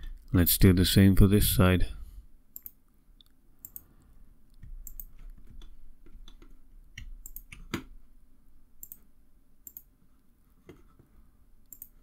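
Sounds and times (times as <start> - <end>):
faint low hum: 0.0 - 12.0
computer mouse clicking: 2.6 - 7.9, 8.8 - 9.9, 11.6 - 12.0.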